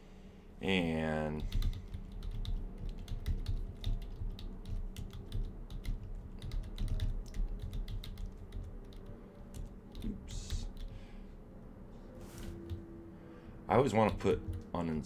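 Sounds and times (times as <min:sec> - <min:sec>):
keyboard typing clicks: 0:01.4 - 0:10.9.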